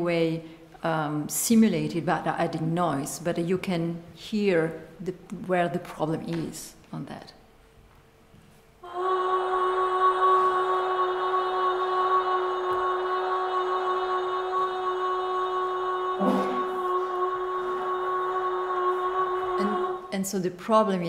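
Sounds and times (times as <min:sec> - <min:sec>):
distorted sung note through loudspeakers: 0:16.1 - 0:20.1.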